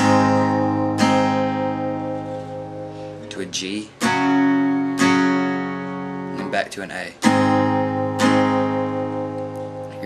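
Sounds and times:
acoustic guitar chord strumming: 0.0s - 10.0s.

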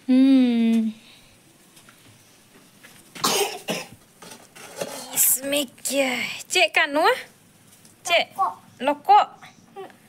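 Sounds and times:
person coughing: 3.2s - 3.9s.

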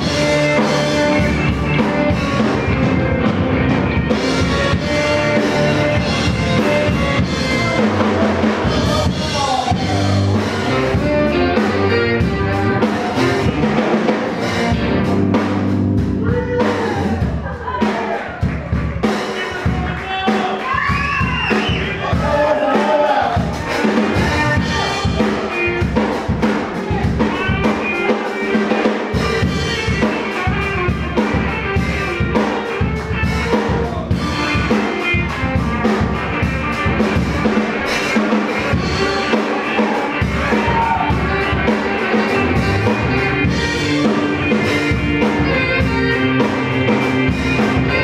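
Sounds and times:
saxophone: 0.0s - 17.5s, 20.9s - 48.0s
drum kit beat: 0.0s - 48.0s
live band playing: 0.0s - 48.0s.

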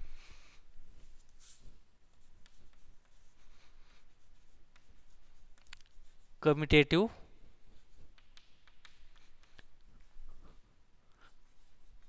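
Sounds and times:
chalk scratching on blackboard: 1.0s - 12.0s.

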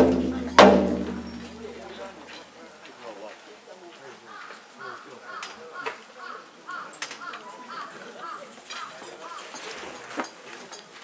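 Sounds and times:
faint murmuring voices: 0.0s - 11.0s.

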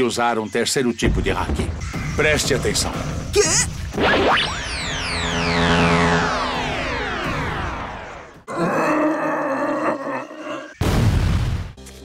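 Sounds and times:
cartoon beast groaning: 8.5s - 10.8s.

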